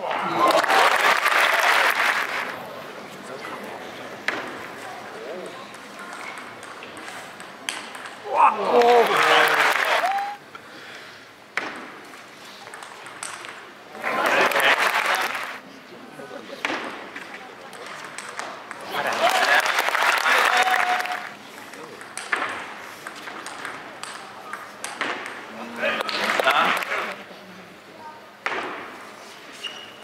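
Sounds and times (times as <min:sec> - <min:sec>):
large hall noise: 0:00.0 - 0:30.0
table tennis ball hits: 0:06.1 - 0:08.2, 0:22.0 - 0:25.4, 0:28.4 - 0:29.0.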